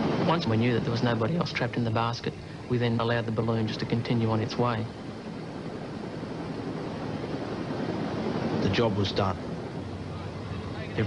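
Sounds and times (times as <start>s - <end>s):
sea waves rushing: 0.0s - 11.0s
wind: 0.0s - 11.0s.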